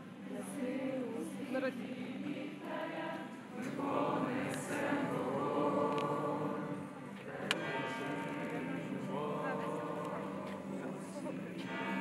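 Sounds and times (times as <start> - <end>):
choir singing long notes: 0.0 - 11.3.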